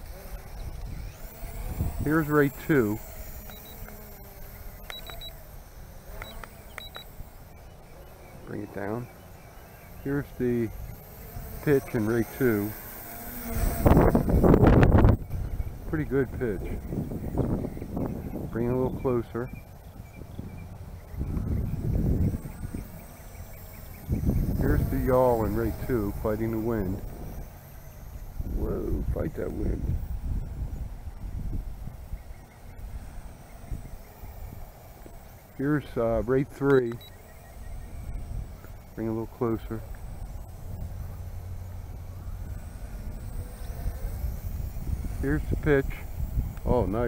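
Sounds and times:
wind buffeting microphone: 0.0s - 7.7s, 10.0s - 36.0s, 37.5s - 47.0s
quadcopter motors whining: 0.0s - 47.0s.

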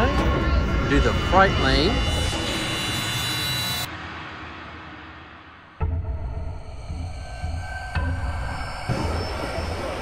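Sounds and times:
faint high steady tones: 0.0s - 3.9s.

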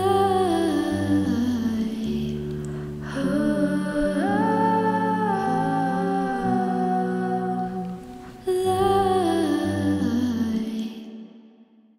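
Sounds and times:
person humming a slow melody: 0.0s - 11.2s.

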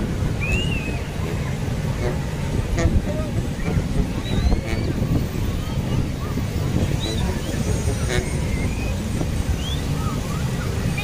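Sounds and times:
breaking surf: 0.0s - 11.0s
wind rumbling on microphone: 0.0s - 11.0s.

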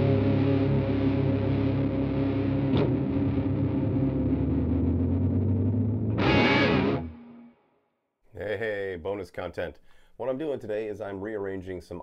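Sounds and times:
electric guitar and bass music: 0.0s - 7.6s
sharp hit: 6.1s - 7.2s.

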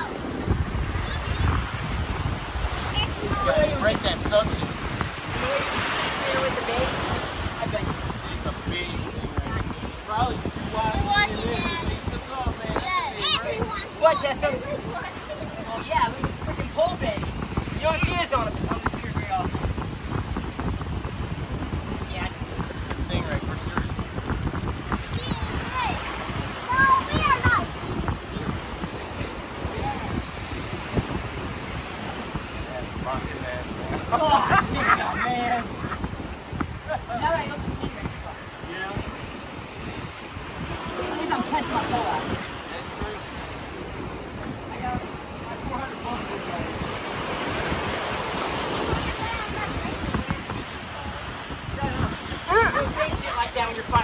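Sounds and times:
voices: 0.0s - 19.8s, 21.6s - 54.0s
ocean surf breaking on rocks: 0.0s - 54.0s
people talking indistinctly: 0.0s - 54.0s
wind rumble on microphone: 0.0s - 54.0s.

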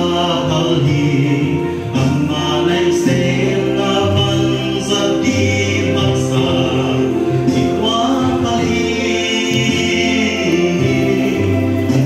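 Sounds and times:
backing music: 0.0s - 12.0s
man singing into microphone: 0.0s - 12.0s.

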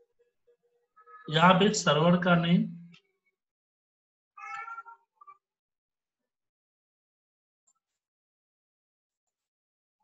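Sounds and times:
cat meowing faintly: 4.3s - 5.5s.

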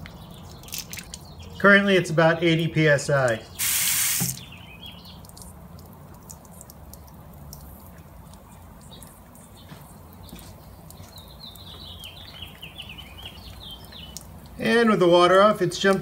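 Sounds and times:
small bird chirping: 4.3s - 5.5s, 6.5s - 14.3s.

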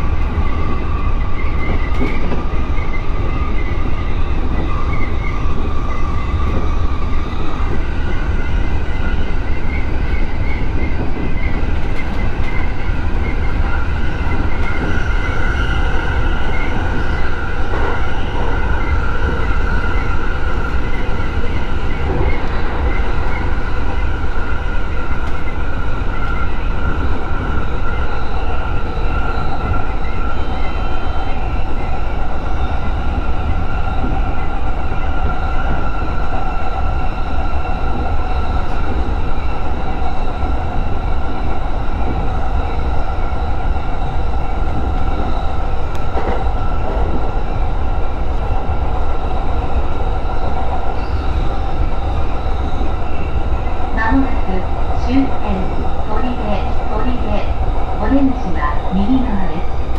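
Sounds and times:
train whine: 0.0s - 59.9s
wheels rumbling on rail: 0.0s - 59.9s.

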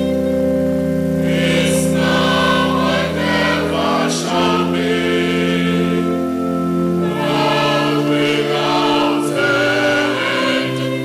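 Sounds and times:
church choir singing in harmony: 0.0s - 11.0s.

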